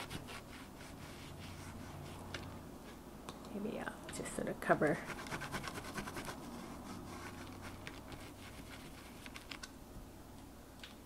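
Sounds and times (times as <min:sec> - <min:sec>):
sponge dabbing paint: 0:00.0 - 0:02.3.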